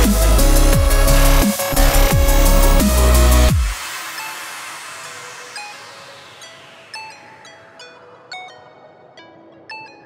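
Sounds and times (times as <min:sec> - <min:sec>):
wash of electronic noise: 0:01.6 - 0:07.0.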